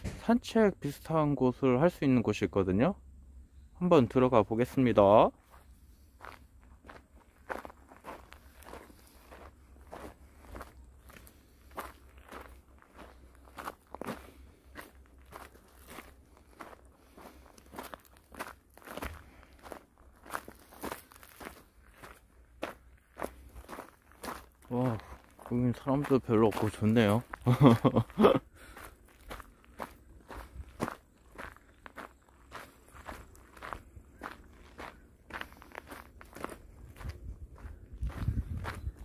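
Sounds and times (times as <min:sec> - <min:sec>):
footsteps crunching on gravel: 0:04.6 - 0:39.0.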